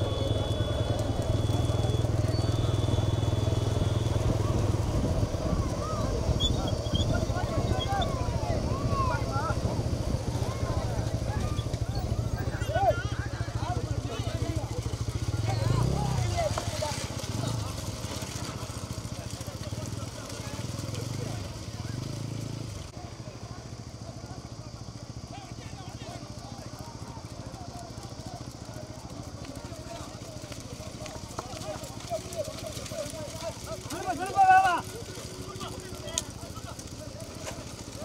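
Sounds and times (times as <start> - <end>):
motorcycle engine revving: 0.0 - 25.4, 26.0 - 38.0
men shouting: 32.2 - 36.0.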